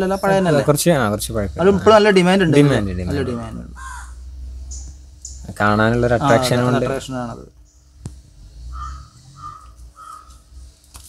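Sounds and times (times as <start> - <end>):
crow cawing: 2.5 - 4.2, 8.7 - 10.4.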